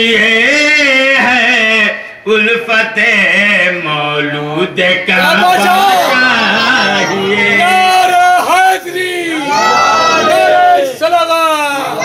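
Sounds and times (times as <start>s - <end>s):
crowd of men calling out: 5.2s - 12.0s.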